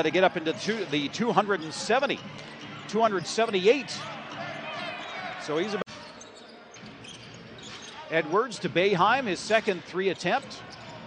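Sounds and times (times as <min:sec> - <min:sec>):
low crowd murmur: 0:00.0 - 0:09.0.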